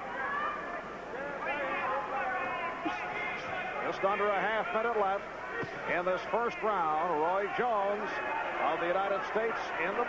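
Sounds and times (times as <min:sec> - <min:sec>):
crowd shouting and cheering: 0:00.0 - 0:10.0.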